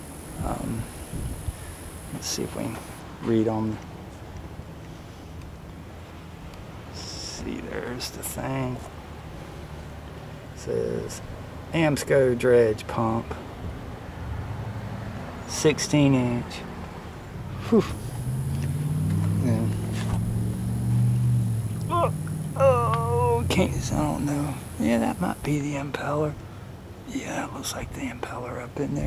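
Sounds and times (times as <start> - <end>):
motor humming: 0.0 - 3.0, 18.0 - 25.6.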